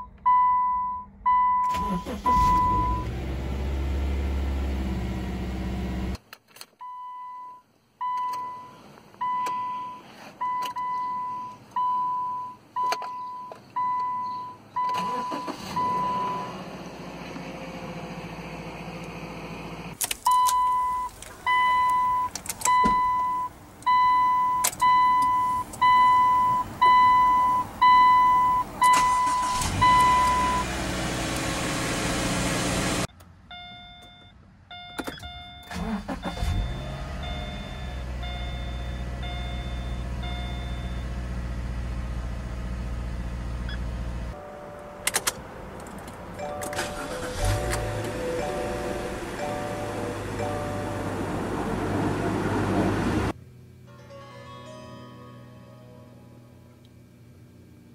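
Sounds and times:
car reminder beep: 0.0 - 3.0, 6.8 - 16.4, 20.3 - 30.7, 33.5 - 41.0
two-tone chime: 46.4 - 51.3.

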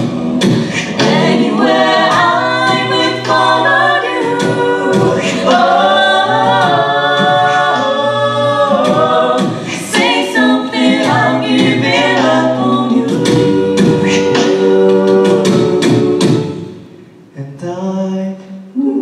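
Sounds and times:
a cappella group singing: 0.0 - 19.0.

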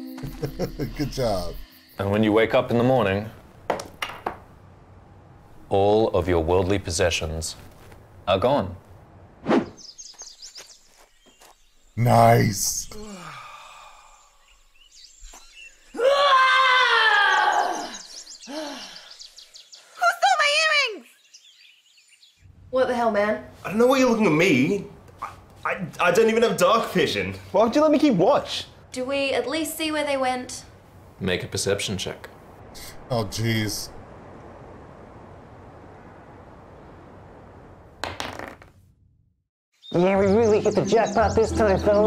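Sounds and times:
faint steady hiss: 0.0 - 9.3, 21.3 - 38.0
die clattering on tabletop: 38.0 - 38.7.

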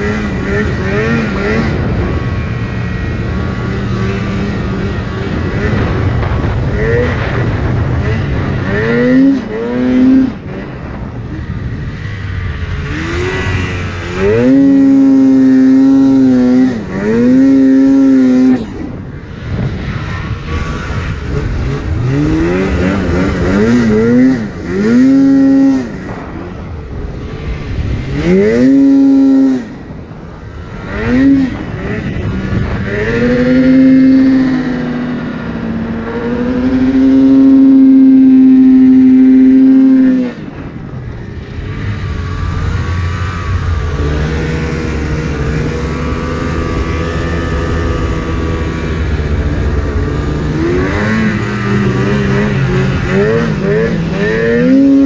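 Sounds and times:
snowmobile engine revving: 0.0 - 55.0.

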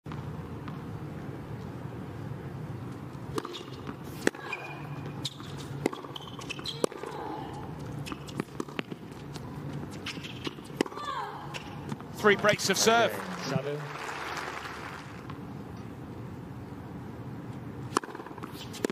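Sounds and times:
tennis ball bouncing on hard court: 3.3 - 7.1, 8.0 - 9.3, 17.9 - 18.9
tennis ball struck by racquets: 17.9 - 18.9.

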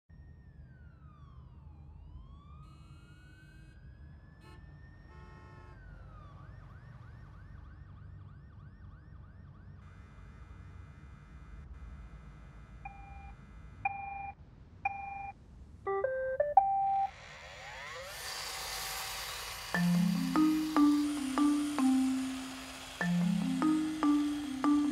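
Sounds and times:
short electronic beeps: 13.9 - 15.3
robot vacuum motor whoosh: 17.1 - 24.9
gliding electronic tones: 19.3 - 24.9.

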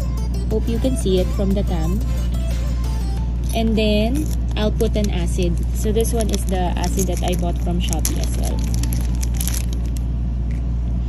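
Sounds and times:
steady low rumble: 0.0 - 11.0
plastic wrapping crinkling: 3.4 - 10.6.

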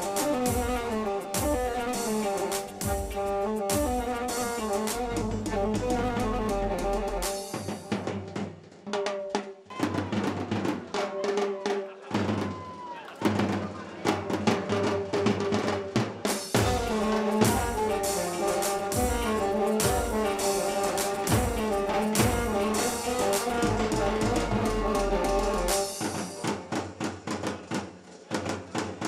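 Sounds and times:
band playing melodic instruments: 0.0 - 10.3, 14.2 - 27.1
drums beaten with sticks: 0.0 - 29.0.

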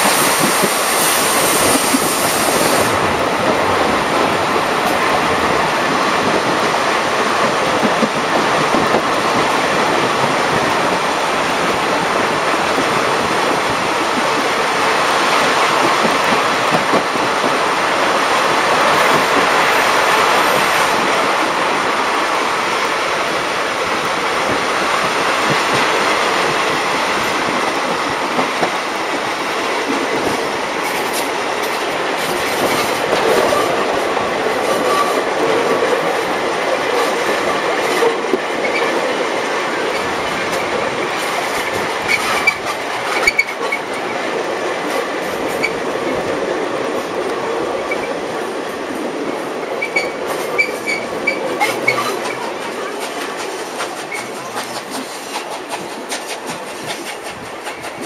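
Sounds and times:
wheels clacking over rail joints: 0.0 - 21.6, 22.3 - 58.0
train rumble and rush: 0.0 - 58.0.

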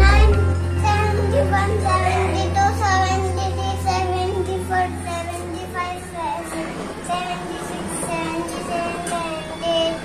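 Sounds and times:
boy chanting sing-song: 0.0 - 10.0.

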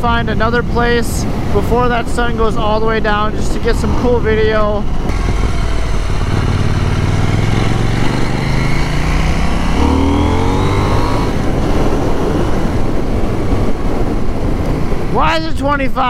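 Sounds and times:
wind rushing: 0.0 - 16.0
motorcycle engine accelerating: 3.8 - 15.1.

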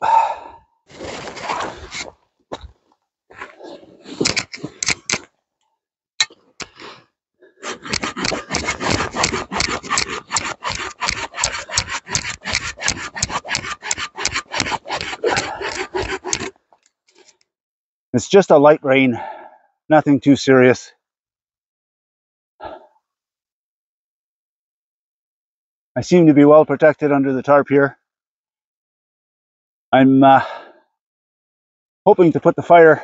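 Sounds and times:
saw scraping: 0.9 - 2.2, 3.3 - 5.3, 6.2 - 17.4
pull saw cutting through log: 3.5 - 5.2, 6.2 - 17.4.

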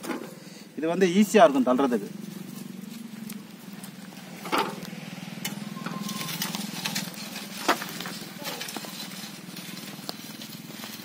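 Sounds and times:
cultivator tines scraping soil: 2.2 - 11.0.

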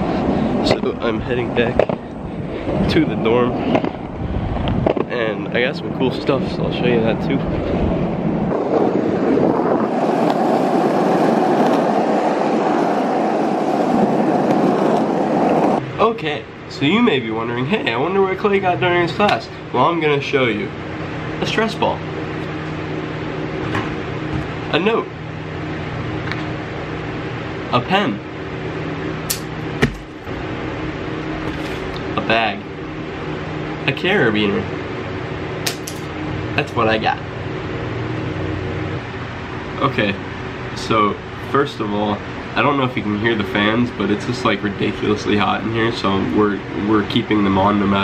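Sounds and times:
skateboard wheels rolling on asphalt: 0.0 - 5.5, 6.2 - 15.8
electric fans humming: 0.0 - 48.0
sharp handling knock: 29.3 - 30.2, 35.6 - 36.1.

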